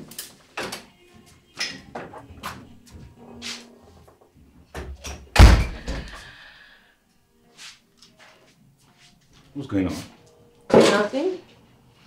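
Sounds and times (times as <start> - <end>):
door slamming shut: 4.8 - 6.1.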